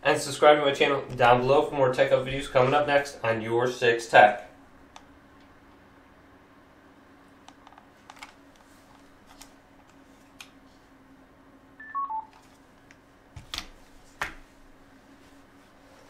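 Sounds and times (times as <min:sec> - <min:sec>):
low steady hum: 0:00.0 - 0:16.0
electronic beeps falling in pitch: 0:11.8 - 0:12.3.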